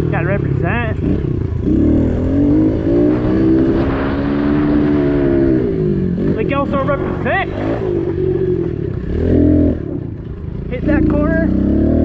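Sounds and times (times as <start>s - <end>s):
pit bike engine revving: 0.0s - 12.0s.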